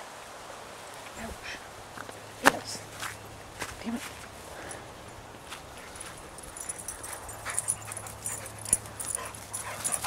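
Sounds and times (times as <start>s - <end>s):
dogs play-fighting vocalizing: 5.8s - 10.0s.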